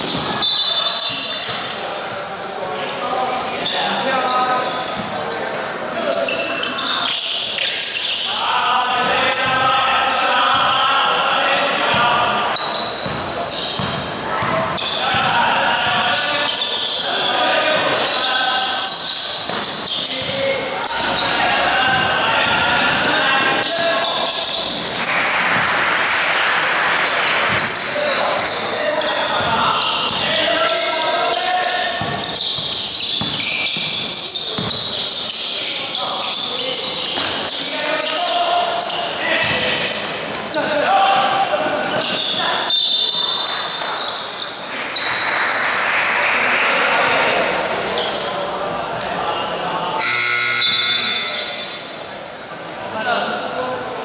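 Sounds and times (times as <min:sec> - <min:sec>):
overlapping voices echoing: 0:00.0 - 0:52.2
crowd noise: 0:00.0 - 0:54.0
basketball bouncing on court: 0:09.4 - 0:09.7, 0:11.9 - 0:16.3, 0:19.4 - 0:23.8, 0:27.4 - 0:27.8, 0:29.4 - 0:30.4, 0:32.0 - 0:35.1.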